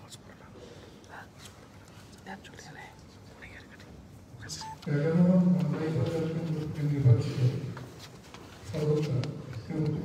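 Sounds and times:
short faint beep: 0:04.5 - 0:04.9.

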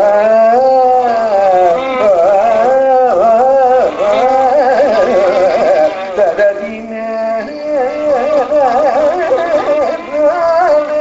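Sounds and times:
man singing long wavering note: 0:00.0 - 0:11.0.

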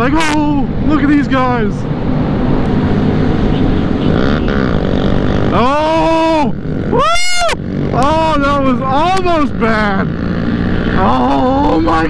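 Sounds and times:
motorcycle engine running: 0:00.0 - 0:12.0
road rumble: 0:00.0 - 0:12.0
wind: 0:00.0 - 0:12.0.

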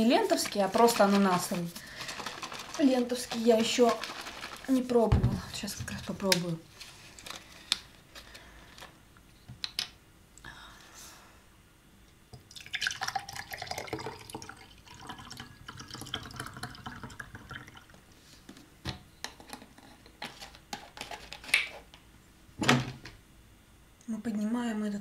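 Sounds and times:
juice pouring into a glass: 0:12.4 - 0:18.0.

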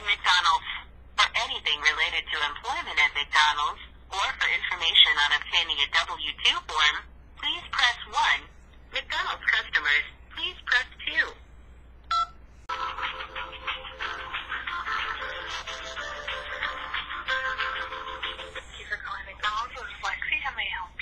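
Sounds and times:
keypad tone: 0:12.1 - 0:12.4
hold music: 0:12.7 - 0:18.9.

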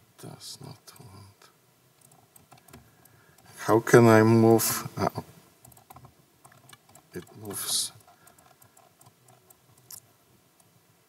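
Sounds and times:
small clicks: 0:02.0 - 0:03.5, 0:05.6 - 0:10.7.

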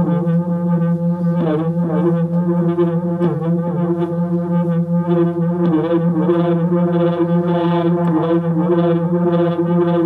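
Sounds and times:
low buzzing synthesizer drone: 0:00.0 - 0:10.0.

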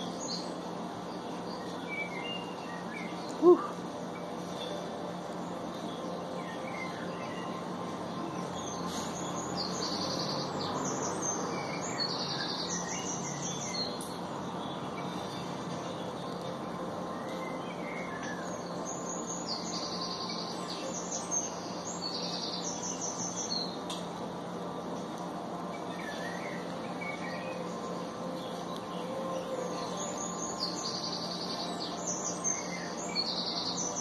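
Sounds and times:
birds chirping in trills: 0:00.0 - 0:34.0.

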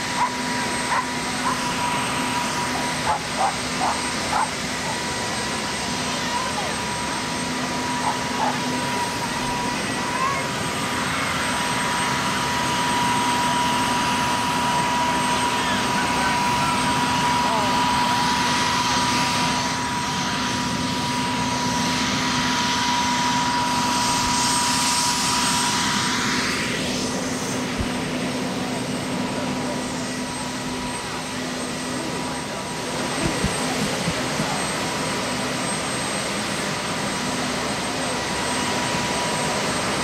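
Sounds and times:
helicopter turbine whine: 0:00.0 - 0:40.0.

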